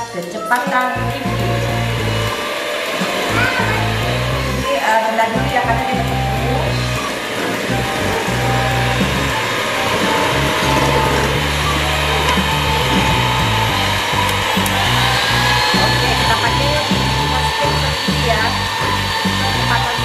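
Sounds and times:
background music: 0:00.0 - 0:20.0
electric hand mixer whirring: 0:00.0 - 0:20.0.

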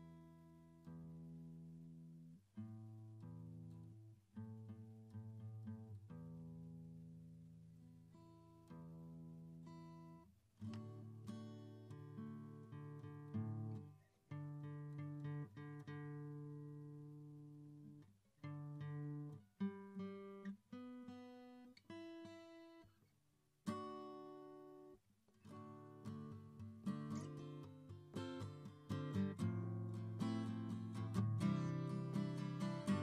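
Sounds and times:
acoustic guitar chords: 0:00.0 - 0:22.9, 0:23.6 - 0:33.0.

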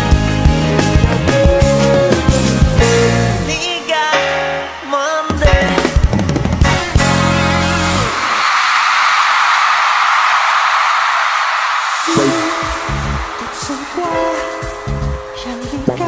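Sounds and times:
live pop music with heavy beat: 0:00.0 - 0:08.5, 0:11.9 - 0:16.0
audience screaming: 0:07.8 - 0:15.6
electronic music with bass line: 0:12.1 - 0:16.0.

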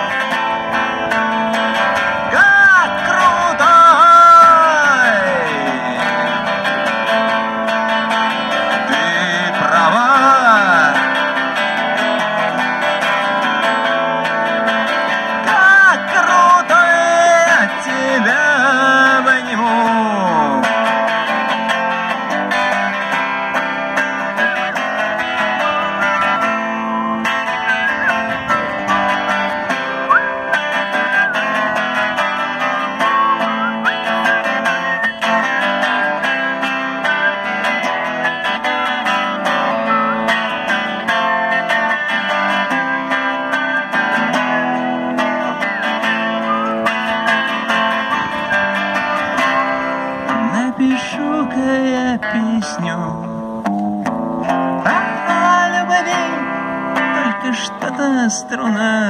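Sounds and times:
electric guitar instrumental: 0:00.0 - 0:59.0.

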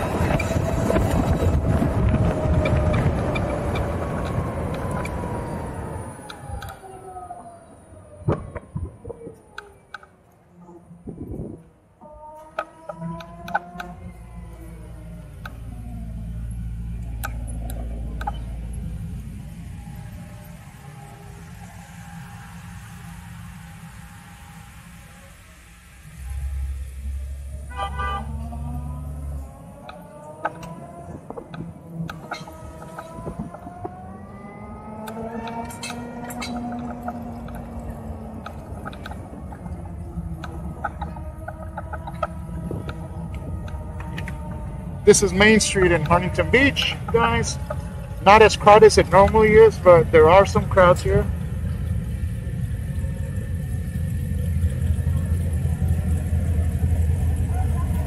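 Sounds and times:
electric motorcycle motor whine: 0:00.0 - 0:07.0, 0:10.6 - 0:58.0
low traffic rumble: 0:00.0 - 0:58.0.

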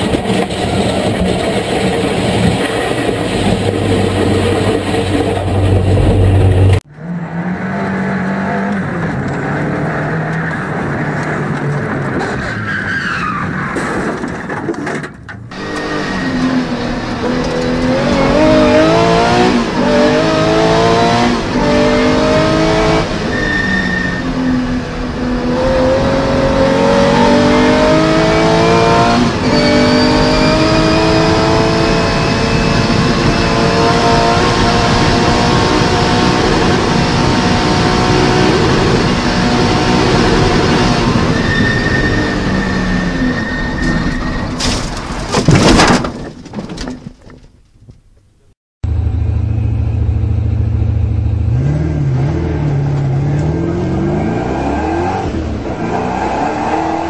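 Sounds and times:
rally car engine revving through gears: 0:00.0 - 0:12.5, 0:15.4 - 0:44.4, 0:48.9 - 0:57.0
racing car engine: 0:00.0 - 0:43.9, 0:48.8 - 0:57.0.

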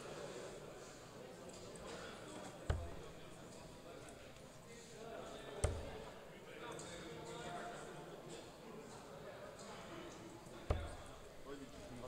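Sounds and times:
crowd chatter: 0:00.0 - 0:12.0
darts thudding into dartboard: 0:02.6 - 0:03.3, 0:05.6 - 0:06.2, 0:10.6 - 0:11.4.

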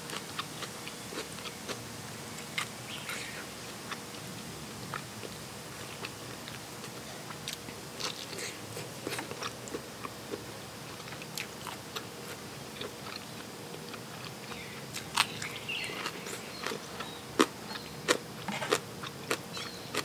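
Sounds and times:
chewing with crisp crunches: 0:00.0 - 0:20.0.

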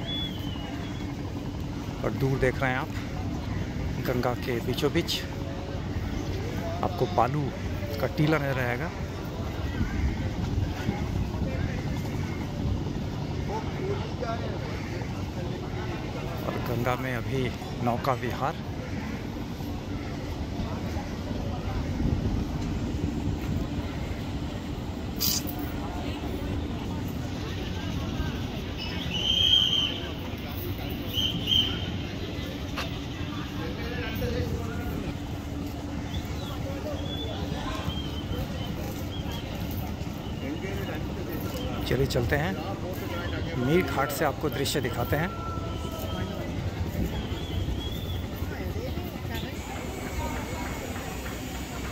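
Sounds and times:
distant people talking: 0:00.0 - 0:51.9
distant voices: 0:00.0 - 0:51.9
low outdoor rumble: 0:00.0 - 0:51.9.

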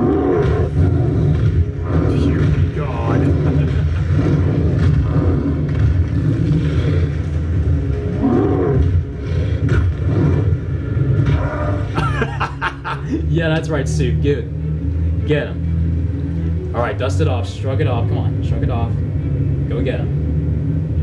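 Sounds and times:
monster roars: 0:00.0 - 0:12.0
deep rumble: 0:00.0 - 0:21.0.

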